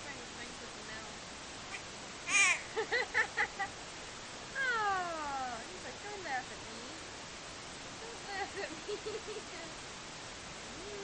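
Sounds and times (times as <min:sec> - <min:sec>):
baby squeaking: 0:01.7 - 0:02.6
baby vocalizing: 0:01.7 - 0:02.7
baby whining: 0:01.7 - 0:02.7.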